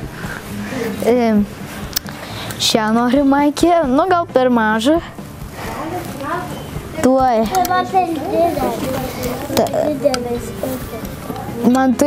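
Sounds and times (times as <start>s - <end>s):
child talking: 6.2s - 12.0s.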